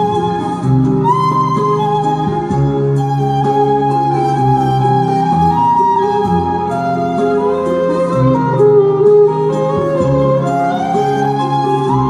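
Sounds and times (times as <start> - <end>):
backing track with bass: 0.0 - 12.0
electric violin melody: 0.0 - 12.0.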